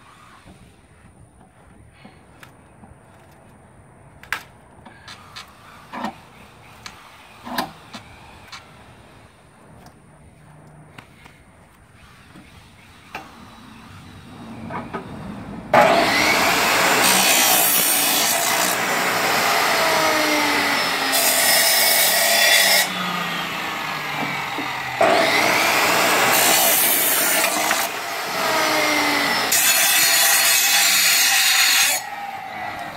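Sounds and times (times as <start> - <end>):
chop saw cutting metal: 15.7 - 32.9.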